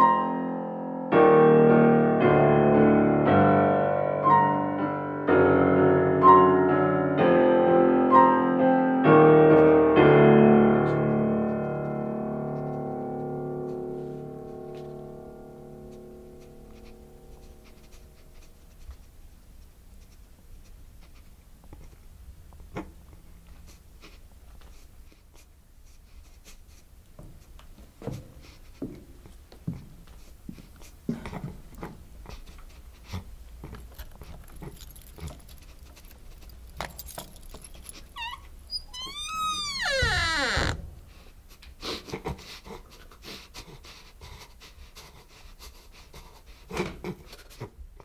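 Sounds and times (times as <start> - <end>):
faint creaks and knocks: 27.1 - 41.4
door creaking on hinges: 34.0 - 41.1.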